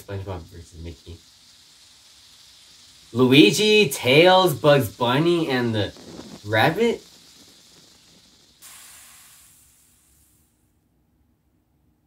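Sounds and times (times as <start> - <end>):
small flame hissing: 0.0 - 10.8.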